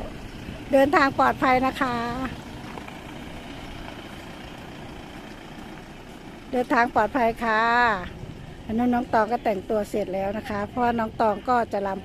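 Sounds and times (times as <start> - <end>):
car engines rumbling: 0.0 - 12.0.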